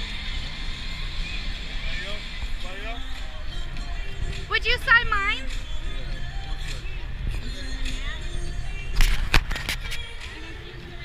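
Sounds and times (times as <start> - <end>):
stadium music over loudspeakers: 0.5 - 11.0.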